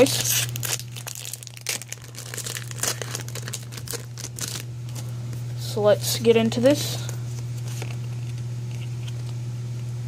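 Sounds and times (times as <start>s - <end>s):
wrapper crinkling and tearing: 0.0s - 5.1s.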